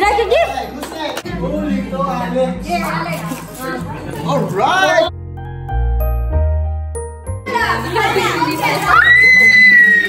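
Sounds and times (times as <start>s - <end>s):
background music with bass line: 4.5s - 9.2s
children's excited voices: 7.7s - 10.0s.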